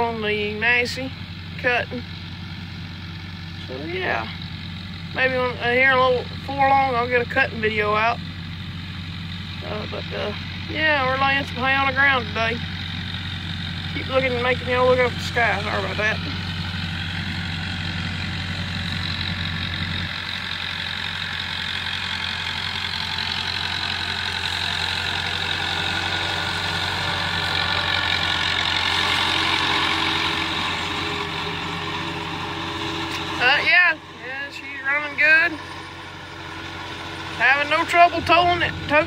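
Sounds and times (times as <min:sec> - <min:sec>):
disc mower cutting hay: 0:00.0 - 0:39.0
tractor engine running: 0:00.0 - 0:39.0.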